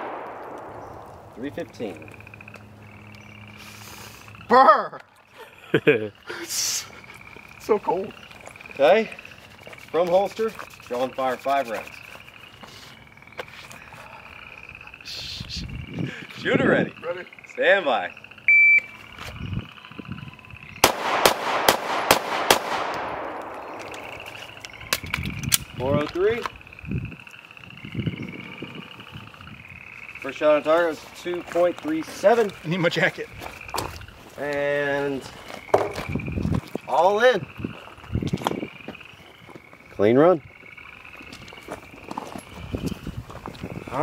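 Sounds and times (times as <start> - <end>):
handgun shots echoing: 0.0 - 1.5, 20.8 - 25.6
footsteps crunching on gravel: 8.2 - 14.2, 18.9 - 19.5, 23.4 - 25.4, 30.5 - 37.0, 37.7 - 40.0, 41.1 - 44.0.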